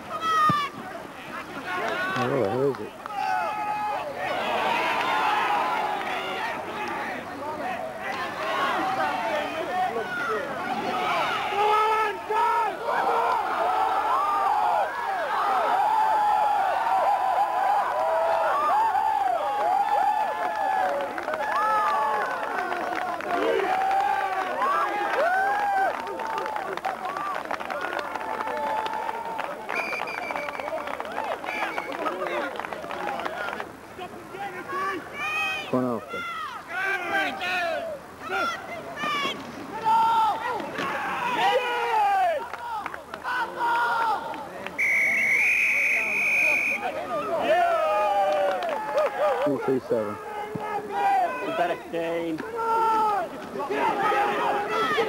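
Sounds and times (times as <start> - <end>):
crowd shouting and cheering: 0.0 - 55.0.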